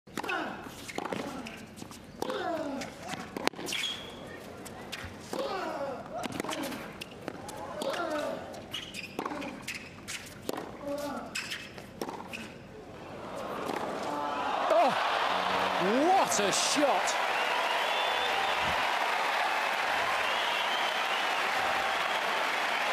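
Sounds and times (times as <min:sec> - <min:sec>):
crowd cheering: 0:13.0 - 0:22.9.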